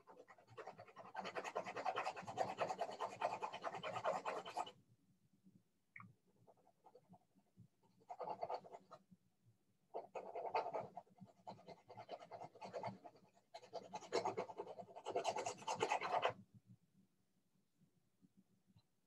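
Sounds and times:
pencil scratching on paper: 0.0s - 4.8s, 6.5s - 7.2s, 7.8s - 9.0s, 9.9s - 16.4s.

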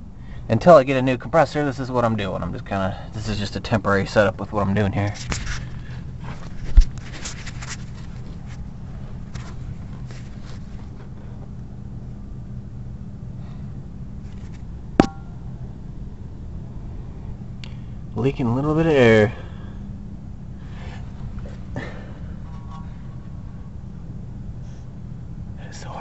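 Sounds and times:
steady low hum: 0.0s - 26.0s.

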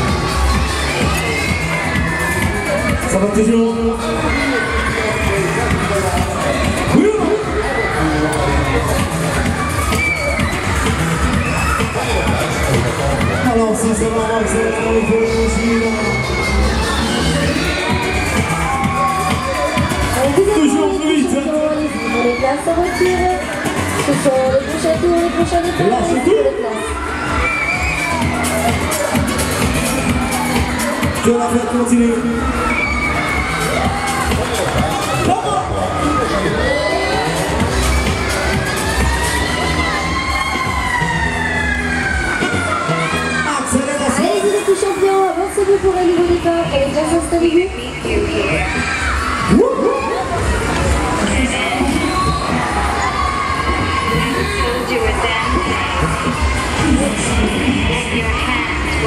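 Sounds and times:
fairground music: 0.0s - 59.0s
riders screaming and shouting: 0.0s - 59.0s
high drawn-out scream: 32.4s - 34.3s.

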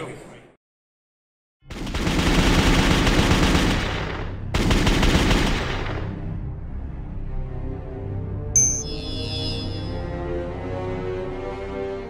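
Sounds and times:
rapid automatic gunfire: 1.7s - 6.2s.

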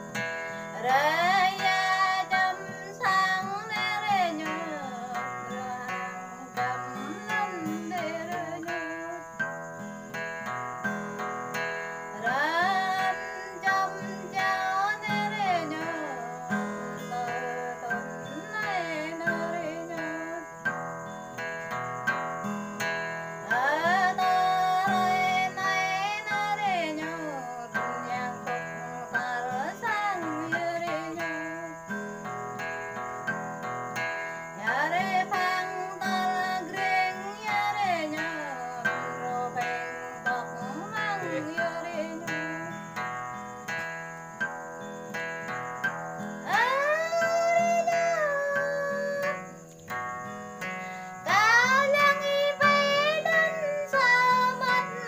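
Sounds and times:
acoustic guitar: 0.0s - 55.0s.

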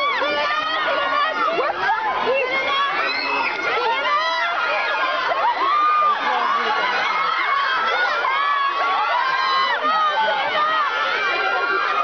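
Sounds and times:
crowd screaming and shouting: 0.0s - 12.0s.

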